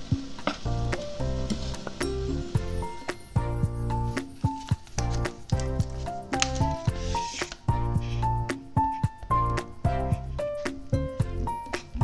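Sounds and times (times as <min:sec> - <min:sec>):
sauce sizzling in saucepan: 0:00.0 - 0:05.6
background music with steady beat: 0:00.0 - 0:12.0.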